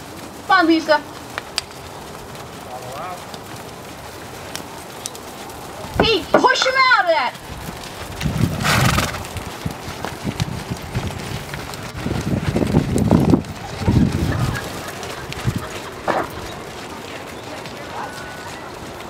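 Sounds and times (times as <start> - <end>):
horse hooves thudding on sand: 0.0 - 19.0.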